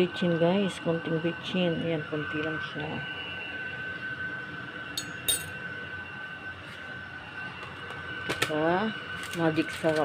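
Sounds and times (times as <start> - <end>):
metal spoon clinking: 5.0 - 5.6
kitchen hum: 5.0 - 5.8, 7.4 - 10.0.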